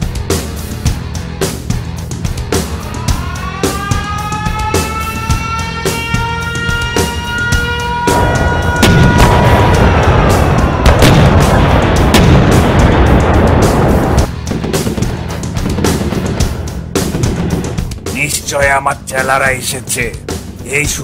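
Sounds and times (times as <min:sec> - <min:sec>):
background music: 0:00.0 - 0:21.0
explosion rumble with booming hits: 0:08.1 - 0:18.1.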